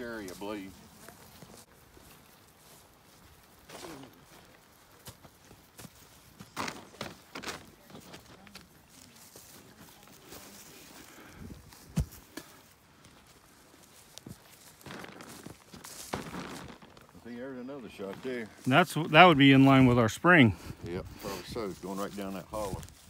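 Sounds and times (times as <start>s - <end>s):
footsteps through grass: 0.0s - 23.0s.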